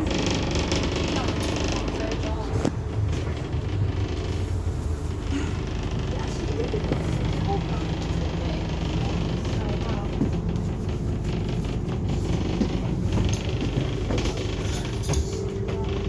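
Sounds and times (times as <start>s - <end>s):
bus engine and road rumble: 0.0s - 16.0s.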